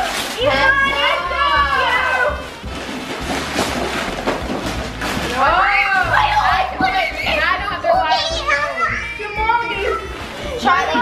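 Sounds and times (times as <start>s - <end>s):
wrapping paper tearing: 0.0s - 6.1s
background music: 0.0s - 11.0s
child's excited voice: 8.0s - 11.0s.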